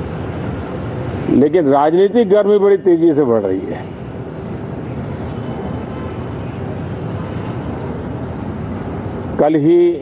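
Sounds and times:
low outdoor rumble with hiss: 0:00.0 - 0:10.0.

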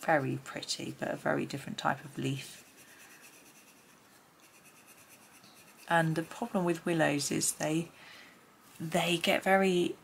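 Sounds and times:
pencil scratching on paper: 0:02.4 - 0:06.6.

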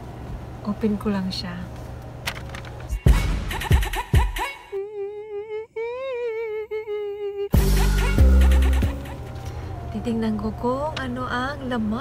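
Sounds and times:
person humming a held note: 0:04.7 - 0:08.1.

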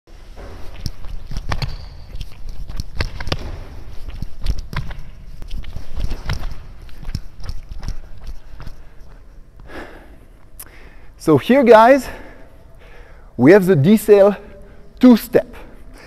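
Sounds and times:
sneaker footsteps on gym floor: 0:00.4 - 0:09.3.

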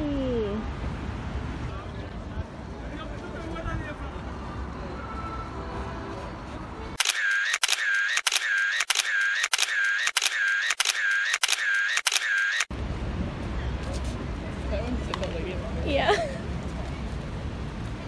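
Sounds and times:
outdoor background noise: 0:00.0 - 0:18.0
camera shutter clicks: 0:07.0 - 0:12.7.

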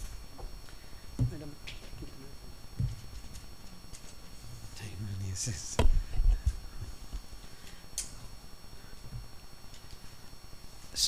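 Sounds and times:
microphone handling thumps: 0:01.2 - 0:01.5, 0:02.7 - 0:03.2, 0:05.6 - 0:07.3.

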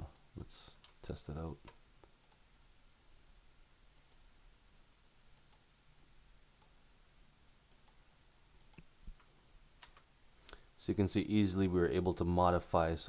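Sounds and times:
faint computer mouse clicks: 0:05.4 - 0:05.6, 0:07.7 - 0:08.0, 0:08.6 - 0:10.6.

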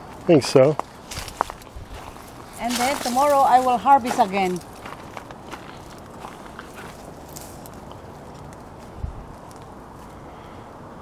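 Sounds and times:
light footsteps: 0:00.0 - 0:10.2
leaves rustling: 0:00.0 - 0:10.6
low outdoor rumble: 0:00.0 - 0:11.0.

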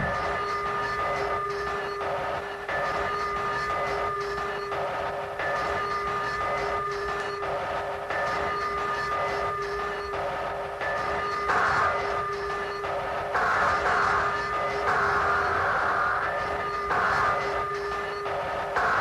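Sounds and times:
choppy noisy rhythm: 0:00.0 - 0:19.0.

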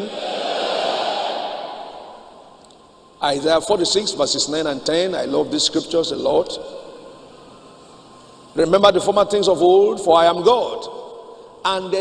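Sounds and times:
crowd shouting response: 0:00.0 - 0:02.2.

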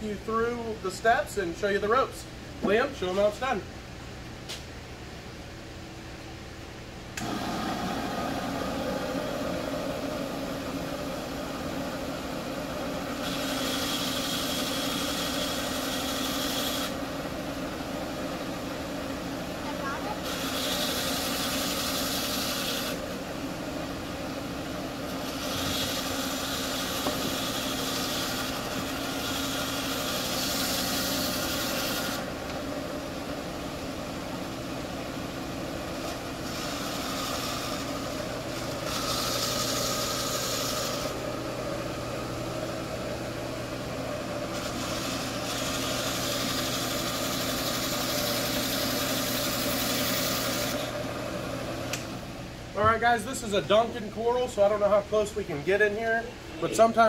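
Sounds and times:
band saw motor hum: 0:07.2 - 0:54.7.

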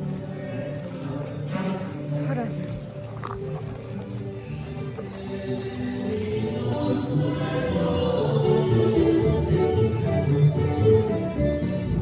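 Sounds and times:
singing with instruments: 0:00.0 - 0:12.0.

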